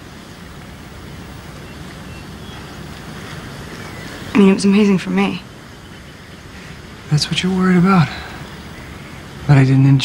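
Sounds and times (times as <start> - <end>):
steady background hush: 0.0 - 10.0.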